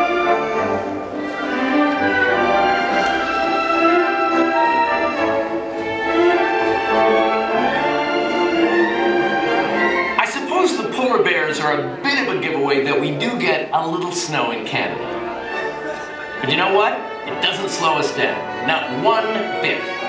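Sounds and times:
orchestral music over speakers: 0.0 - 20.0.

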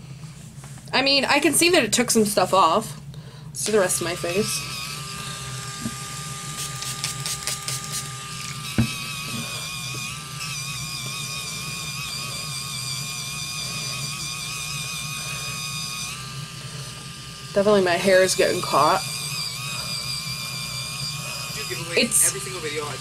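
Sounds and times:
cleansing brush motor whine: 3.6 - 23.0.

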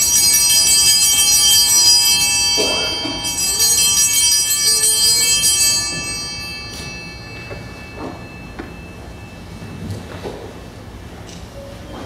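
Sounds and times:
small hand bells jingling: 0.0 - 9.6.

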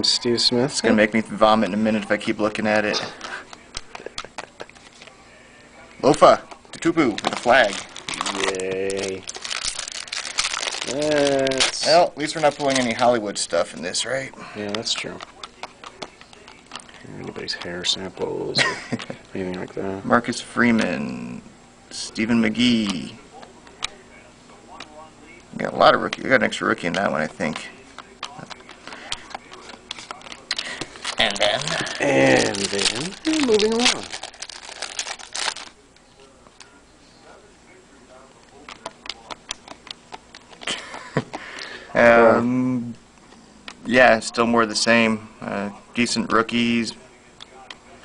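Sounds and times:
foil wrapper crinkling: 6.8 - 13.2, 28.2 - 35.8.

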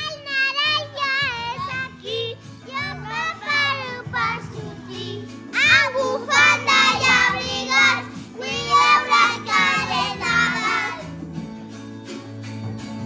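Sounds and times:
recorded backing music: 0.0 - 13.0
children singing: 3.0 - 11.1.

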